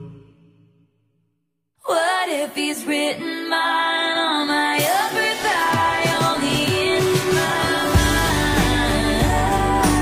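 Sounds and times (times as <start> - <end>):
pop song music: 0.0 - 0.7, 1.9 - 10.0
woman singing: 1.8 - 10.0.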